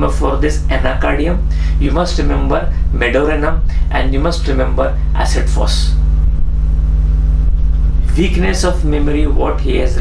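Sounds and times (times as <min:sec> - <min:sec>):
speech: 0:00.0 - 0:06.0, 0:08.0 - 0:10.0
loud low hum: 0:00.0 - 0:10.0.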